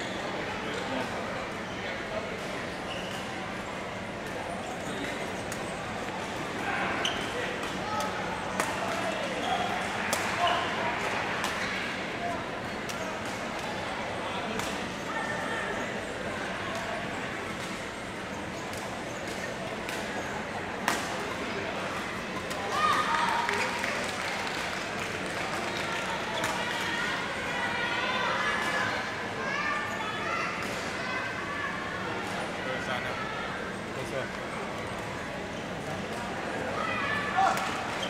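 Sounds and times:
murmur of voices: 0.0 - 38.0.

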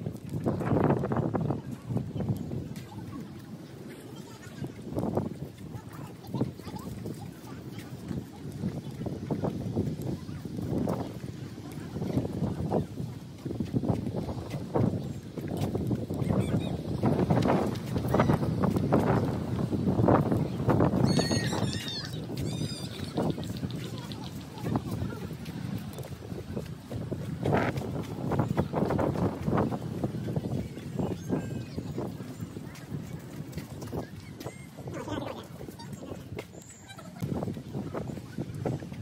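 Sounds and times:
footsteps on concrete: 0.0 - 39.0.

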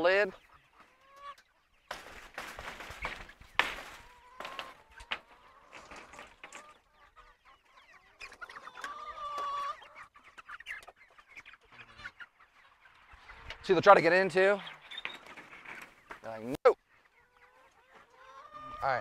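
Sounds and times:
chickens clucking: 0.0 - 19.0
wings flapping: 1.9 - 6.7.

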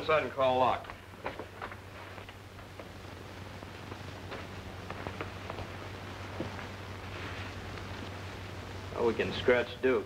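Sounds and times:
old film soundtrack hiss: 0.0 - 10.0
low hum: 1.0 - 9.8
soft rustle: 1.2 - 9.0.

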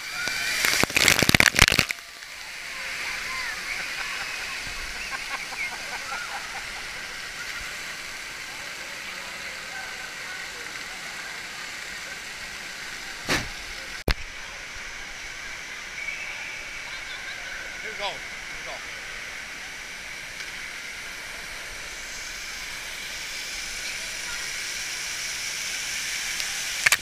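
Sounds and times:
water splashing onto camera: 0.0 - 6.2
rushing water: 0.0 - 27.0
short burst of noise: 0.2 - 2.0.

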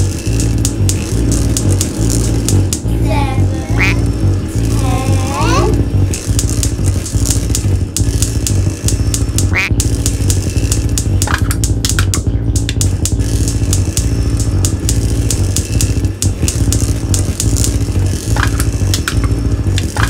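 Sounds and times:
fast irregular clicks: 0.0 - 20.0
low buzzing synthesizer drone: 0.0 - 20.0
rising pitch sweeps: 1.2 - 10.1.

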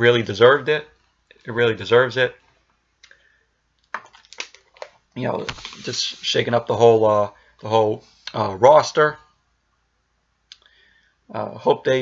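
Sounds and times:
man speaking: 0.0 - 2.4, 5.2 - 9.2, 11.3 - 12.0
soft mouth click: 10.5 - 10.7.

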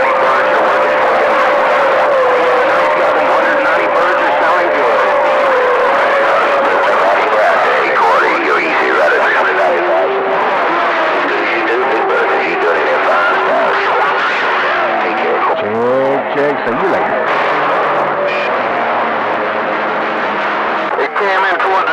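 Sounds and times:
garbled radio voices: 0.0 - 20.0, 20.6 - 21.9
radio static hiss: 15.0 - 17.3, 20.9 - 21.9
radio whistle: 16.9 - 18.8.

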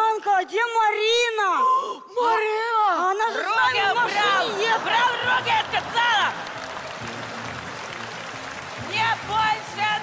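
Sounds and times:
audience applauding: 4.1 - 10.0.

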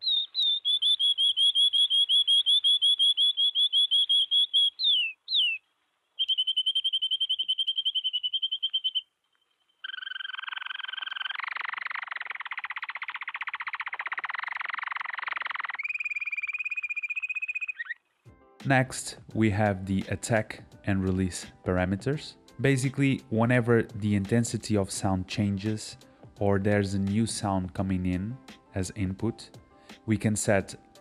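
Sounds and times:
canary song: 0.0 - 18.1.

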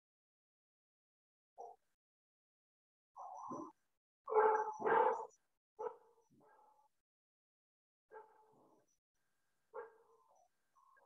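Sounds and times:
dog barking: 1.6 - 1.8, 4.3 - 6.8, 8.1 - 8.6, 9.7 - 10.4.

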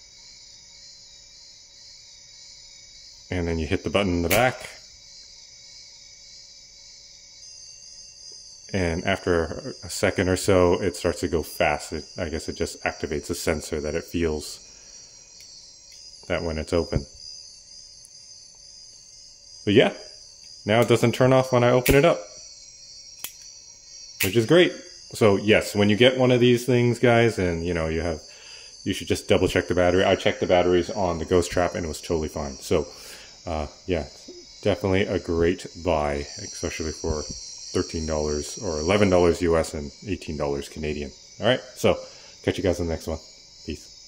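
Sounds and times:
high-pitched electronic whine: 0.0 - 44.0
faint high-pitched hiss: 2.9 - 5.0, 24.1 - 44.0
faint low hum: 7.4 - 43.9.

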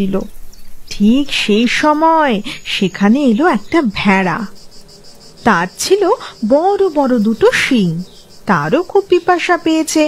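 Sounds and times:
woman narrating: 0.0 - 0.3, 0.9 - 4.6, 5.4 - 10.0
high insect chirring: 0.0 - 10.0.

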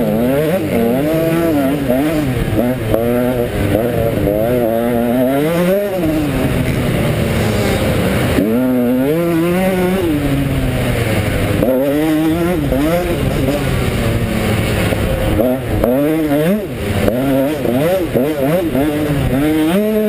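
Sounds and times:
motocross engine revving: 0.0 - 20.0.

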